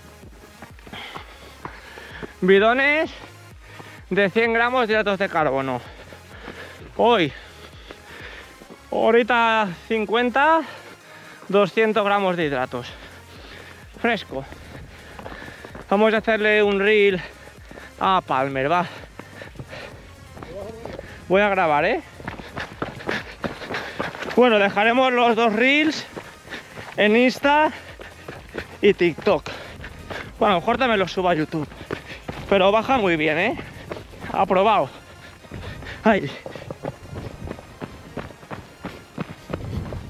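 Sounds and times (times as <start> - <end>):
footsteps on dirt path: 0.0 - 40.0.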